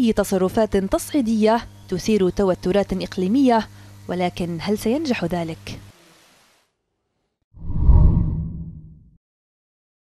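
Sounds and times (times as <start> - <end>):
deep whoosh: 7.6 - 9.0.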